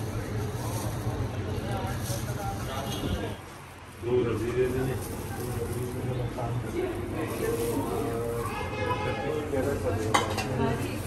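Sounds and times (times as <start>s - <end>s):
indistinct background voices: 0.0s - 11.0s.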